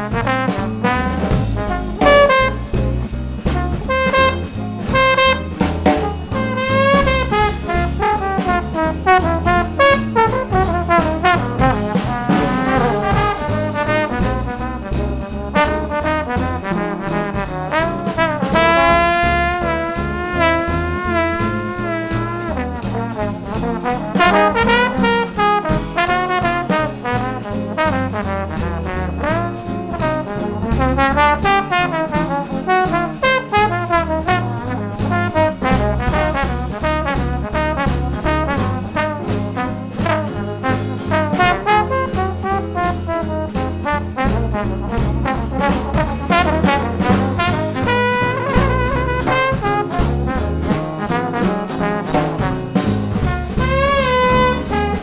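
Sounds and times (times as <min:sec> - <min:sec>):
drums on cymbals: 0:00.0 - 0:55.0
trombone playing melody: 0:00.0 - 0:55.0
walking bass: 0:00.0 - 0:55.0.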